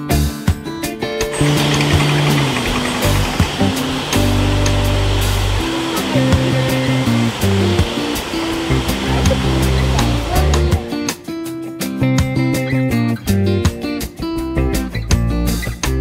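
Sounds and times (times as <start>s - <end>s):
background music: 0.0s - 16.0s
water rushing and churning: 1.4s - 10.8s.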